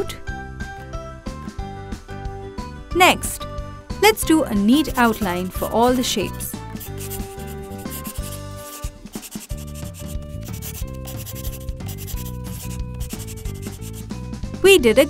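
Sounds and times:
light background music: 0:00.0 - 0:15.0
marker rubbing on paper: 0:06.7 - 0:14.0.

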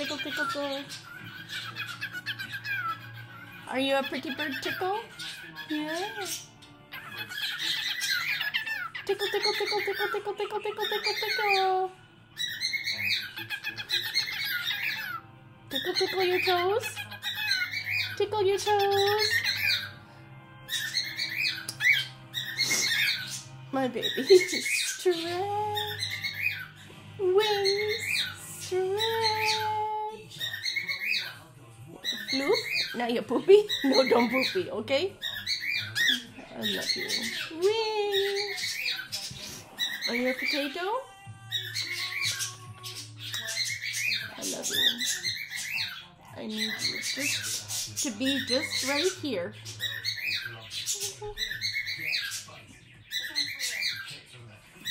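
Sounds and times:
cockatiel chirping: 0:00.0 - 0:20.0, 0:20.6 - 0:31.4, 0:32.0 - 0:54.9.

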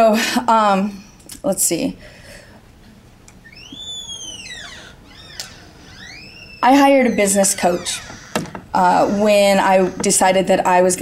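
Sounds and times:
high-pitched squeak: 0:03.4 - 0:10.3.

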